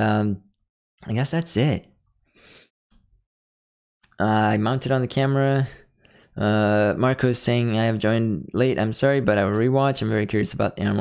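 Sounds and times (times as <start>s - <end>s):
man's soft breath: 2.2s - 2.7s, 6.0s - 6.4s.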